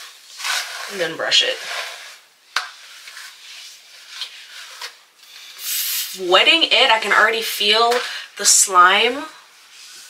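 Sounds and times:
brush rubbing through wet hair: 0.0 - 6.3, 9.1 - 10.0
short burst of hiss: 5.4 - 6.2.

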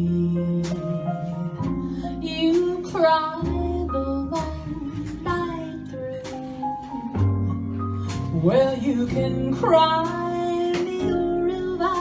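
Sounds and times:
piano chords: 0.0 - 12.0
upright bass walking: 0.0 - 12.0.

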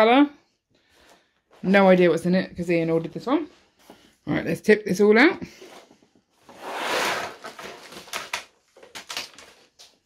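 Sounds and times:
plastic bags sliding out of box: 6.4 - 8.3
plastic bags clattering and crinkling: 7.0 - 10.0.

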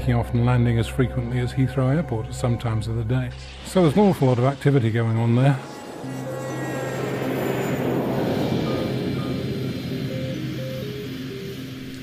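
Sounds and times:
background music: 0.0 - 12.0
military jet engine noise: 4.5 - 12.0.

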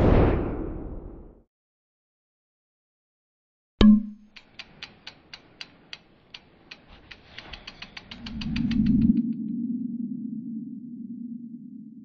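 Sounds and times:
sharp ticks: 3.8 - 9.4.

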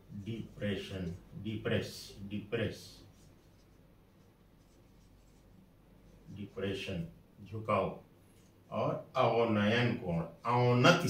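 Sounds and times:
room background hum: 0.0 - 11.0
marker writing on whiteboard: 3.0 - 6.8.

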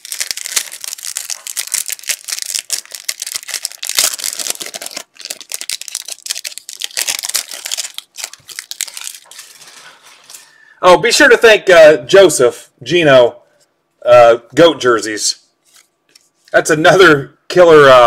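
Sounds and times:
card pack wrapper crinkling: 0.0 - 10.4
cards sliding through hands: 15.6 - 16.6.

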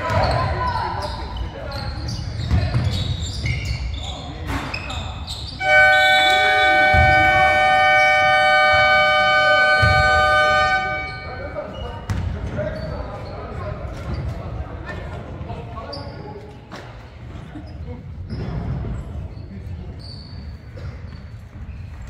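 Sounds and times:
buzzer horn: 5.6 - 11.6
basketball bouncing: 6.9 - 7.5, 9.7 - 10.5, 12.0 - 12.4.

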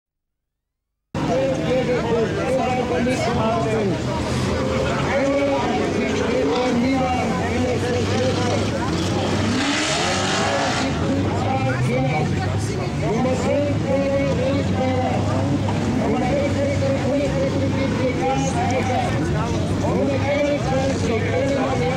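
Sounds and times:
race car engines accelerating: 1.2 - 21.9.

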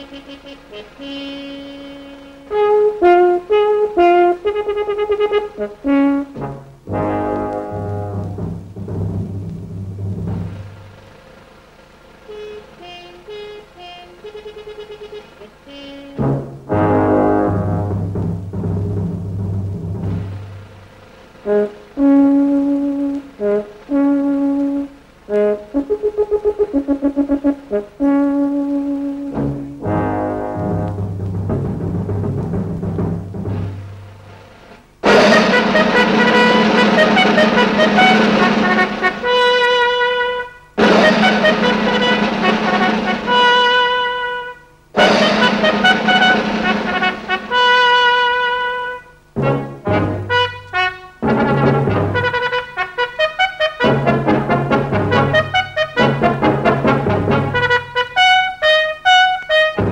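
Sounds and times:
orchestral film music with brass: 0.0 - 10.8, 12.3 - 59.9.

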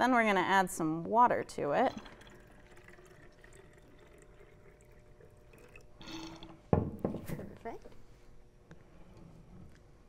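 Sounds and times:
low room hum: 0.0 - 10.0
water pouring into plastic bottles: 1.8 - 6.6.

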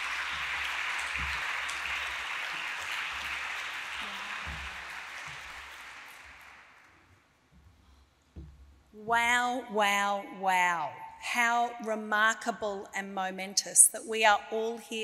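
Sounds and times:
audience applauding: 0.0 - 7.0.

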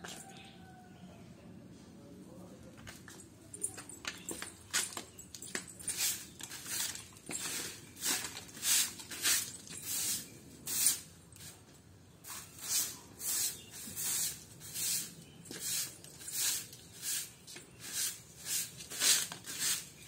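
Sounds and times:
broom sweeping concrete: 5.8 - 20.0.

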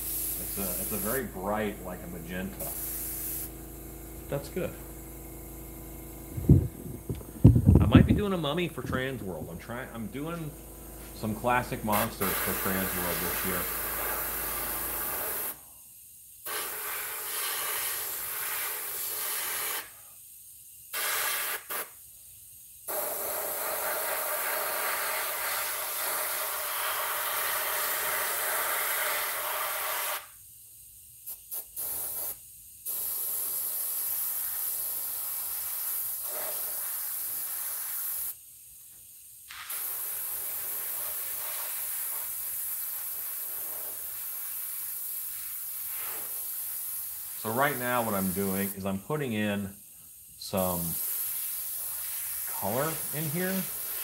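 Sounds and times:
airbrush hissing: 0.0 - 3.6, 6.0 - 30.6, 31.2 - 38.5, 39.1 - 49.0, 50.0 - 54.0.

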